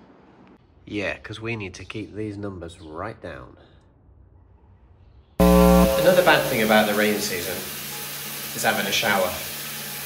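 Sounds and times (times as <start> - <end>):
wrong answer buzzer: 5.4 - 6.9.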